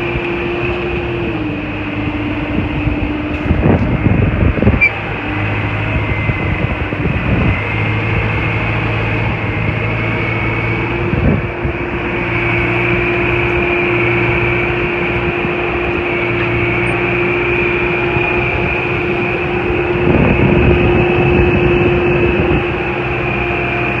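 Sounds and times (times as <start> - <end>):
diesel engine running: 0.0 - 24.0
high whine: 0.0 - 24.0.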